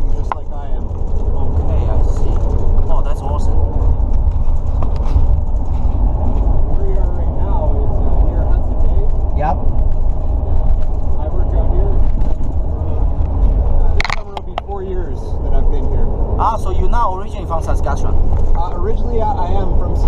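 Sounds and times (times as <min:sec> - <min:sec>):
faint voices: 0:00.0 - 0:20.0
road and engine rumble: 0:00.0 - 0:20.0.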